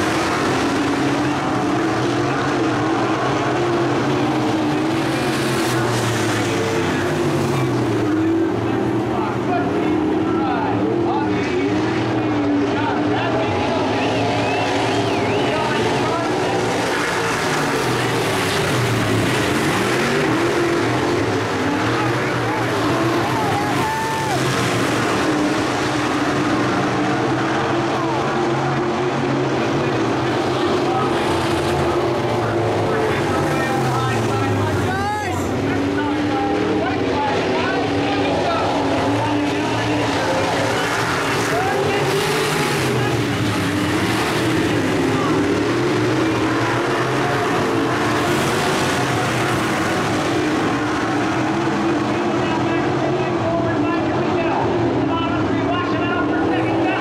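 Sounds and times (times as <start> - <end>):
race car engines: 0.0 - 57.0
race car passing close: 0.0 - 57.0.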